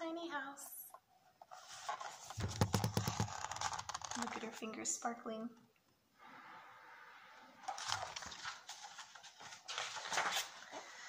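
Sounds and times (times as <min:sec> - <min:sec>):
book rustling and scuffing: 0:01.5 - 0:04.3, 0:07.6 - 0:11.0.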